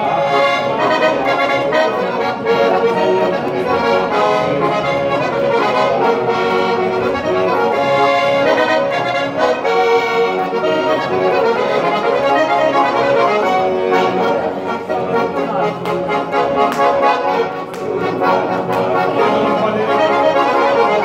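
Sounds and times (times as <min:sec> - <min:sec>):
accordion dance tune: 0:00.0 - 0:21.0.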